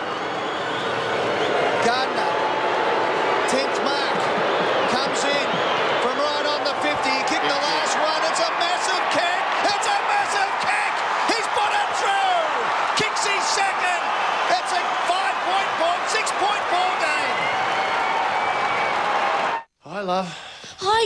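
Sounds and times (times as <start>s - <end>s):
stadium crowd cheering: 0.0s - 19.7s.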